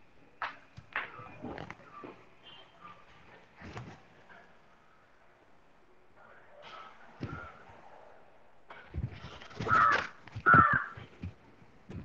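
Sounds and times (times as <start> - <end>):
bird calling: 9.4 - 11.2.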